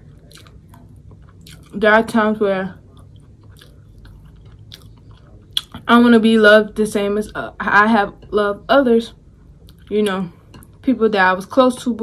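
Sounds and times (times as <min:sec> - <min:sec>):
person chewing food: 0:00.0 - 0:01.8, 0:02.7 - 0:05.8, 0:09.4 - 0:10.8.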